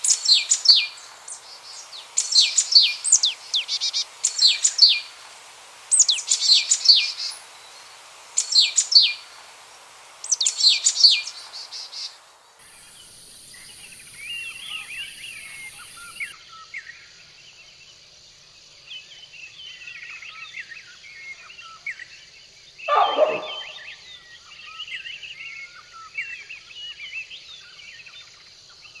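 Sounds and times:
small birds chirping and singing: 0.0 - 5.1, 8.4 - 9.3, 12.7 - 16.4
low bird call: 22.9 - 24.0.

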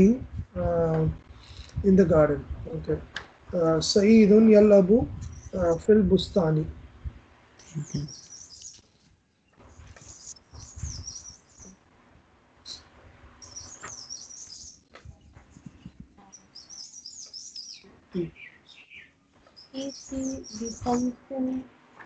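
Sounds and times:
bird chirping and twittering: 5.1 - 6.4, 7.6 - 8.8, 9.4 - 11.8, 12.6 - 21.6.

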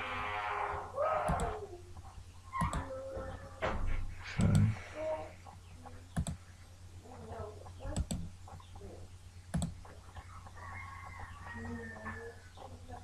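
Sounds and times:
low electrical hum: 0.0 - 13.0
computer mouse clicks: 1.3 - 1.6, 2.6 - 2.9, 4.4 - 4.7, 6.1 - 6.4, 7.9 - 8.3, 9.5 - 10.2.

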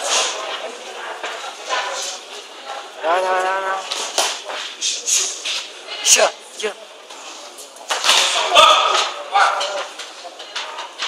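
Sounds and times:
loud shouting voices: 8.2 - 9.9.

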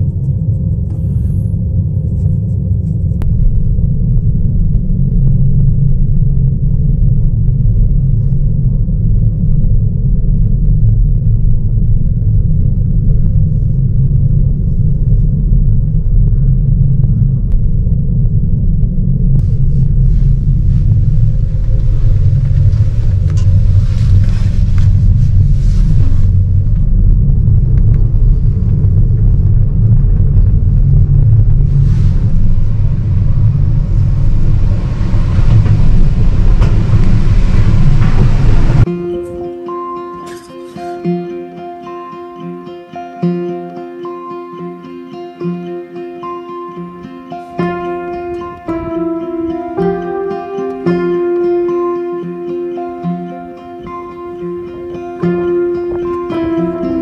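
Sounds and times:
low rumble in gondola cabin: 0.0 - 38.9, 54.2 - 57.0
hiss and clatter at lift tower: 3.2 - 38.9.

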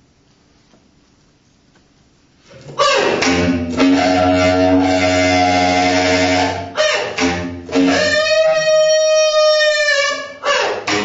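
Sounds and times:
bass clarinet playing held notes: 2.8 - 11.0.

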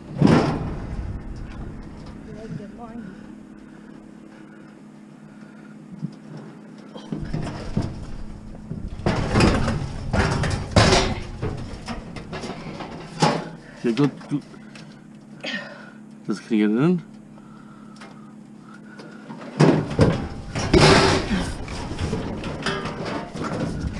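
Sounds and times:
metal clunks and scrapes: 0.0 - 2.6, 7.1 - 14.1, 19.3 - 23.9.

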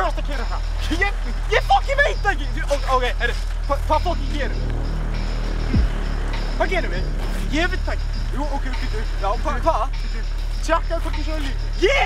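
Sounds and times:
steady low hum: 0.0 - 11.8
people arguing: 0.0 - 12.0.

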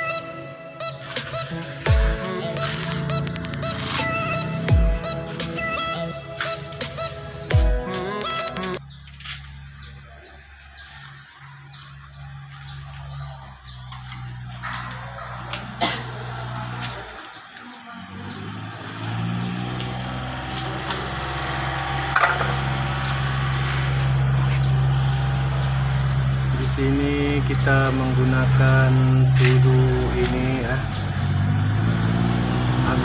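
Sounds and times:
background music with low drone: 0.0 - 17.4, 18.0 - 33.0
bird chirping: 0.0 - 33.0.

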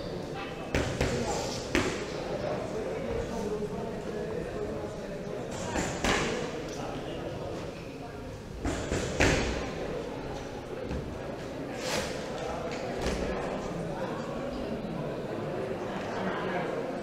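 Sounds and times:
indistinct voices in echoing hall: 0.0 - 17.0.

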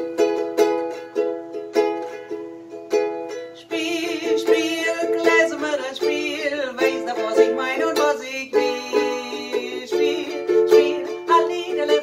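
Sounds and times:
strummed ukulele: 0.0 - 12.0
woman singing with vibrato: 3.4 - 12.0.

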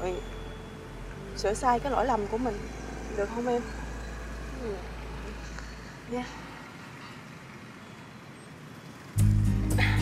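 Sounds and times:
distant road traffic: 0.0 - 10.0.

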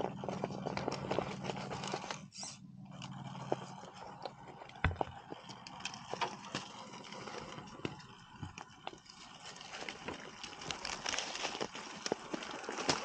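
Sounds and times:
tyres crunching on stones and leaves: 0.0 - 2.3, 3.0 - 13.0
low drivetrain hum: 0.0 - 13.0
heavy thump: 4.8 - 5.2.

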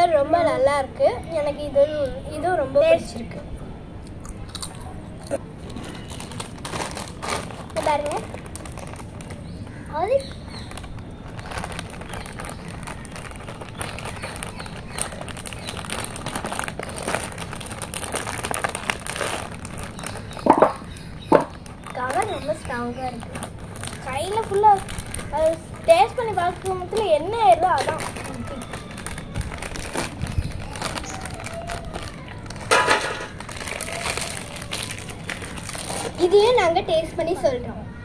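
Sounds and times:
child's voice: 0.0 - 3.5, 7.8 - 8.3, 9.9 - 10.3, 21.9 - 23.4, 24.0 - 29.3, 36.1 - 38.0
potato chips crunching: 4.2 - 9.4, 10.6 - 36.4
foil crisp packet crinkling: 5.6 - 36.7.

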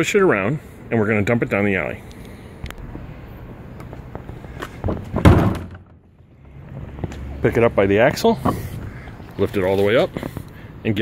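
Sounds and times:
garbage cart thumping down: 5.1 - 6.0.

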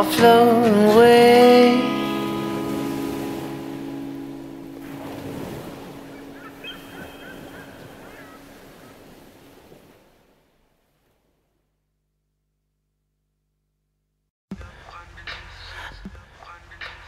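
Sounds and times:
rock song held chord: 0.0 - 6.6
faint wavering high squiggles: 4.8 - 9.0.

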